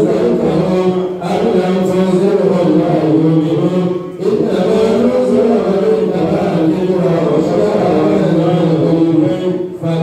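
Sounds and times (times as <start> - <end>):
man chanting a prayer: 0.0 - 10.0.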